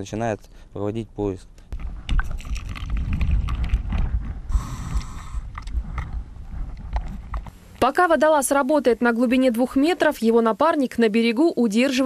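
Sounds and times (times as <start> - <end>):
hiss: 4.5 - 5.4.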